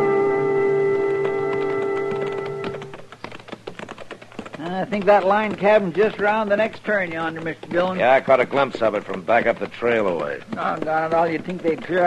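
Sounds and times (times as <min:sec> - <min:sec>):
held music chord: 0:00.0 - 0:02.8
horses hooves clip-clopping: 0:01.0 - 0:12.0
person speaking: 0:02.2 - 0:12.0.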